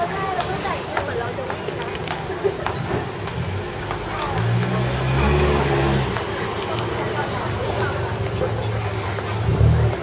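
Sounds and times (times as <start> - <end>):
street chatter: 0.0 - 10.0
vehicle engine passing by: 3.4 - 8.8.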